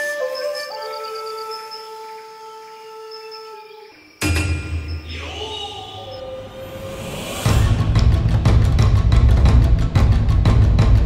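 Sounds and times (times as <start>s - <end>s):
flute holding long note: 0.0s - 3.9s.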